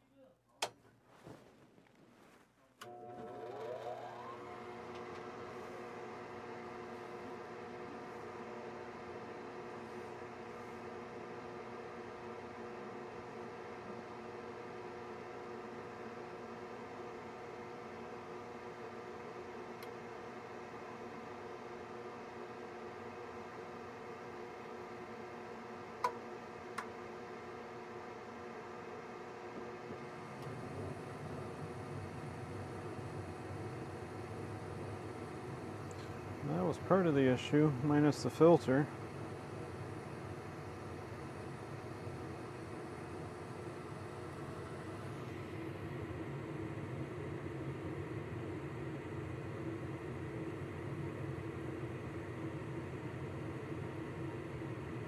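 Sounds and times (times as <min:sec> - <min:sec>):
furnace motor humming: 0:02.7 - 0:55.0
burners low rumble: 0:29.8 - 0:41.4.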